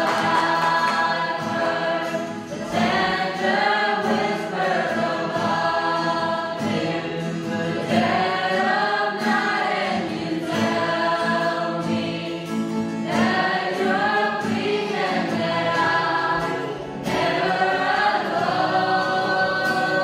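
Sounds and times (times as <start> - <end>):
choir singing gospel: 0.0 - 20.0
strummed acoustic guitar: 0.0 - 20.0.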